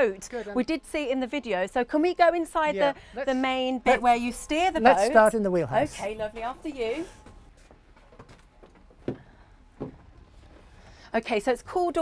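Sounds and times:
footsteps on boat deck: 0:07.2 - 0:10.8.

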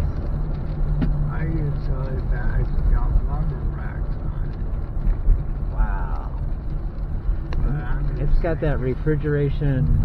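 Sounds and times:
car rumbling inside cabin: 0:00.0 - 0:10.0.

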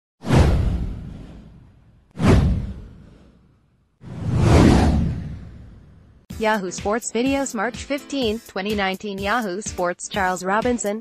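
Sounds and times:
deep whoosh: 0:00.2 - 0:06.2.

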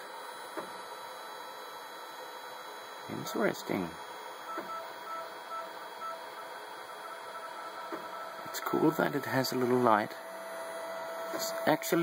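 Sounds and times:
printer whirring: 0:00.0 - 0:12.0.

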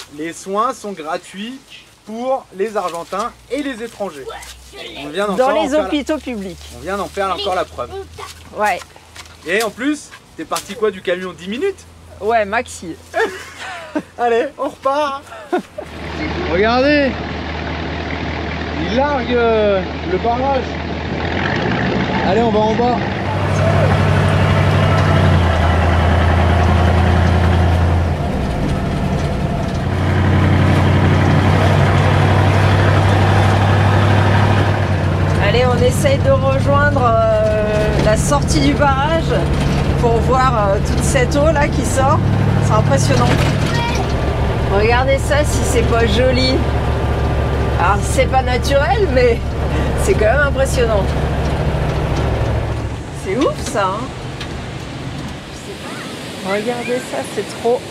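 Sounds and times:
truck engine running: 0:15.9 - 0:55.6.

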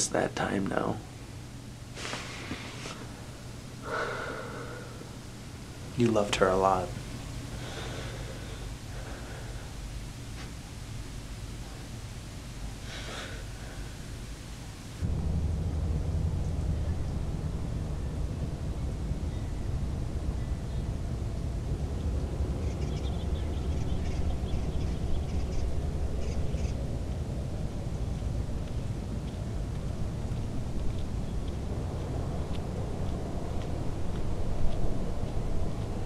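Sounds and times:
low outdoor rumble: 0:00.0 - 0:36.0.

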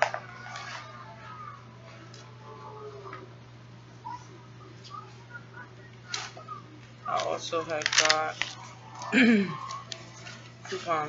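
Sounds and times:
steady low hum: 0:00.0 - 0:11.0
papers and small items handled: 0:07.1 - 0:11.0.

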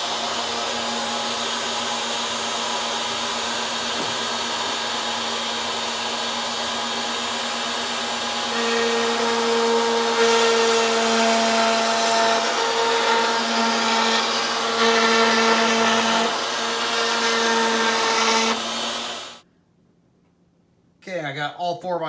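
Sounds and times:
router cutting wood: 0:00.0 - 0:19.4.

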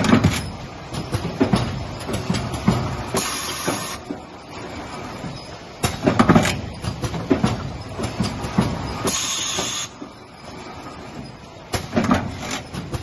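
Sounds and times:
plastic jerrycans clattering on conveyor: 0:00.0 - 0:04.3, 0:05.8 - 0:09.9, 0:11.7 - 0:13.0.

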